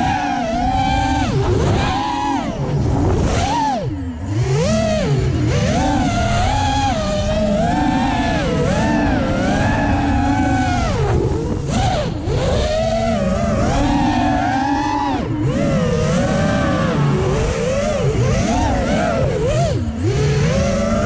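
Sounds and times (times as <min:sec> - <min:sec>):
drone motors whining: 0:00.0 - 0:21.0.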